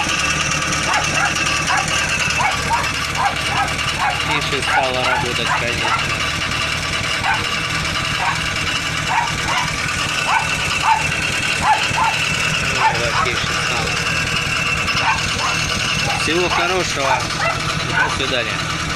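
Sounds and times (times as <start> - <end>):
van engine idling: 0.0 - 18.9.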